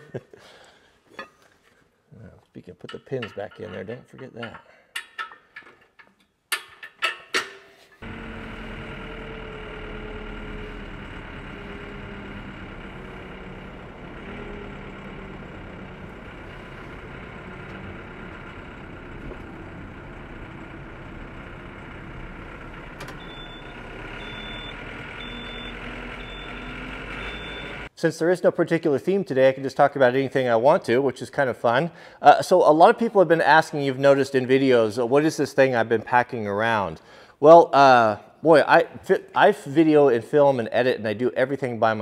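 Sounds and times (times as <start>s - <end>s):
tractor engine running: 8.0s - 27.9s.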